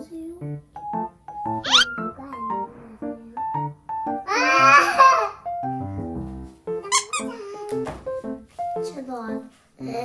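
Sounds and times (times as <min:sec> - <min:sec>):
light cute background music: 0:00.0 - 0:10.0
short high squeak: 0:01.6 - 0:02.2.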